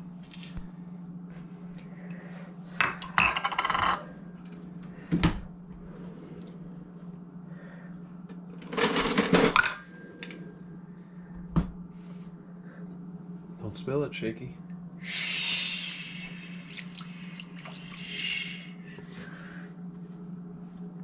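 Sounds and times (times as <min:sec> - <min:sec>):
low hum: 0:00.0 - 0:21.0.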